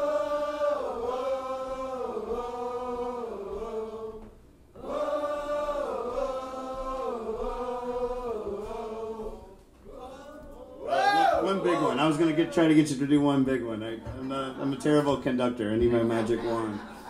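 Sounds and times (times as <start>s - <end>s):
audience singing in unison: 0.0s - 13.0s.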